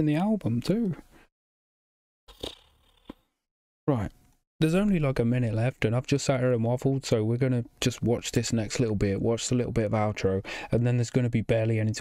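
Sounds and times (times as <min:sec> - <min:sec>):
short breath into microphone: 0:10.4 - 0:10.7.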